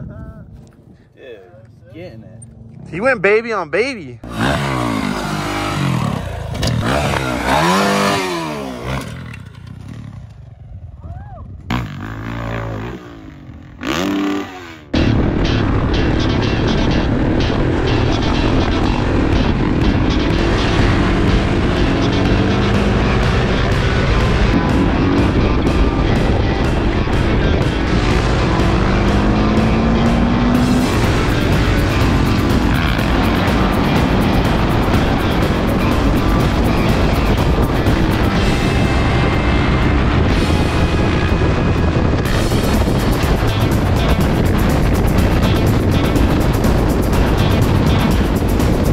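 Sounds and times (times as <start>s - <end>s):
dirt bike engine revving: 4.2s - 10.5s, 11.7s - 15.6s, 17.2s - 48.9s
loud background music: 6.8s - 8.4s, 15.0s - 48.9s.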